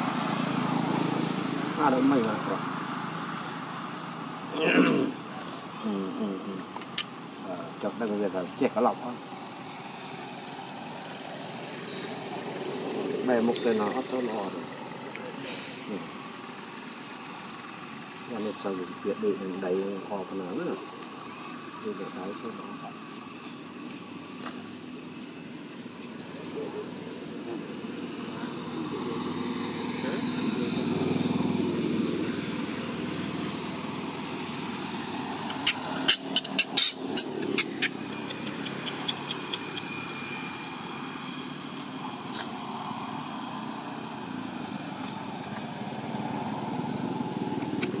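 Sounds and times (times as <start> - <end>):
engine running: 0.0 - 48.0
sharp clicks: 35.4 - 40.0.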